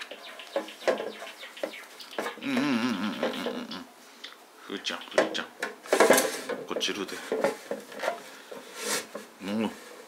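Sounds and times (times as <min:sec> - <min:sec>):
plastic case rubbing and scraping: 0:07.2 - 0:10.0.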